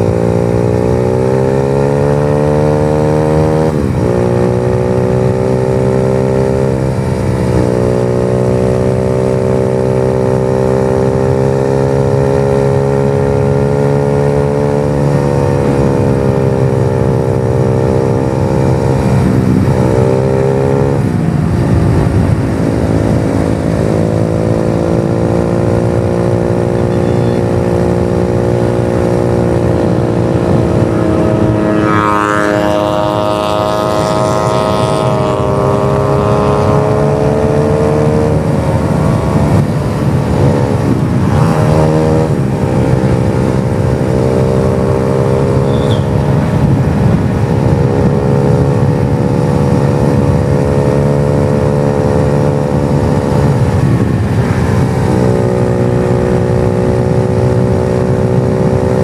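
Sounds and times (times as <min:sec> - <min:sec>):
motorcycle engine shifting gears: 0:00.0 - 0:59.0.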